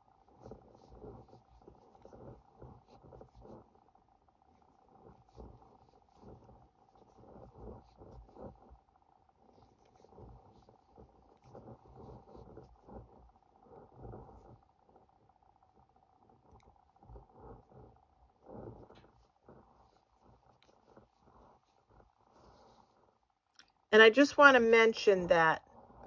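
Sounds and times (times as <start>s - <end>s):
yarn and crochet hook rustling: 0.0s - 3.8s, 4.4s - 23.8s.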